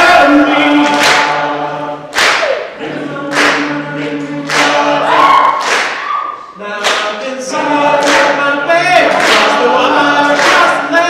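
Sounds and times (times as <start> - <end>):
male choir singing in harmony: 0.0 - 5.6, 6.6 - 11.0.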